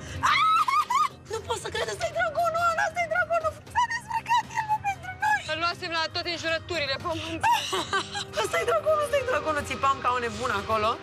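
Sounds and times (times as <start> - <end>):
background music: 0.0 - 11.0
woman talking excitedly: 1.3 - 7.4.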